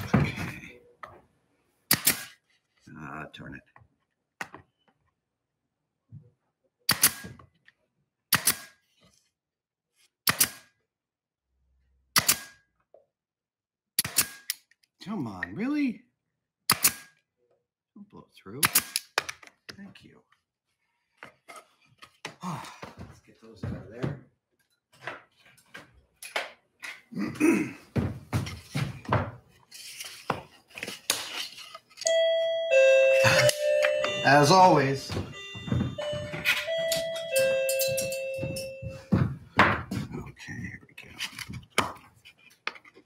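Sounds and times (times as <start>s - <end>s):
pneumatic nailer firing: 1.9s - 2.4s, 6.9s - 7.4s, 8.3s - 8.8s, 10.2s - 10.7s, 12.2s - 12.6s, 14.0s - 14.6s, 16.7s - 17.1s.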